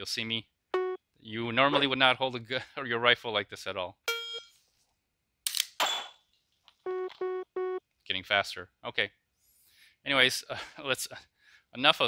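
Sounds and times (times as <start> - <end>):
phone app beep: 4.1 - 4.5, 6.9 - 7.8
short beeps: 6.9 - 7.8.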